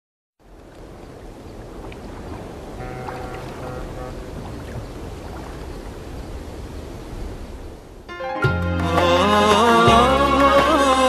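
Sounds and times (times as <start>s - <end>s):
surf: 0.4s - 11.0s
wind: 0.4s - 11.0s.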